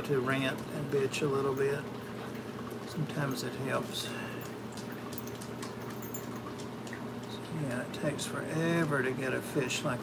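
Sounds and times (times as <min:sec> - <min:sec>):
aquarium equipment humming: 0:00.0 - 0:10.0.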